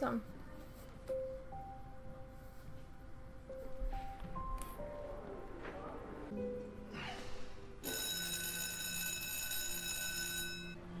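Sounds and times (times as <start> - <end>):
electric bell ringing: 7.8 - 10.8.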